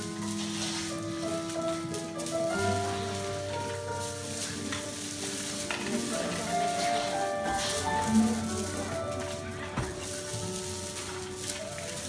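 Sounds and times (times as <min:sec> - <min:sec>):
music of held notes: 0:00.0 - 0:12.0.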